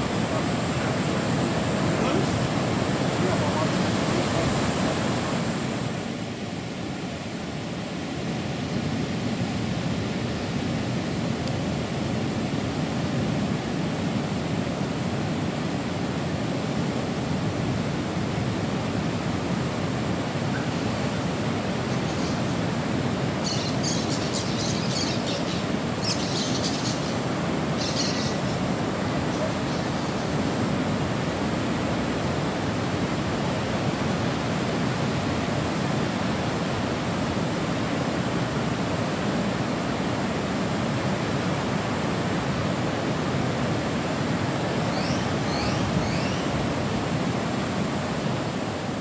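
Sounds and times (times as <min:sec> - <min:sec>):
waves breaking on a beach: 0:00.0 - 0:49.0.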